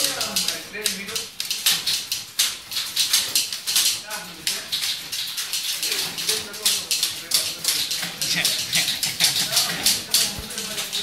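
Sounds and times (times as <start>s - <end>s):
typewriter keys clattering: 0.0s - 11.0s.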